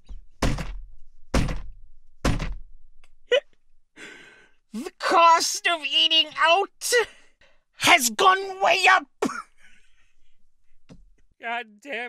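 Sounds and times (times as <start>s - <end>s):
heavy dull thumps with boom: 0.1s - 2.7s.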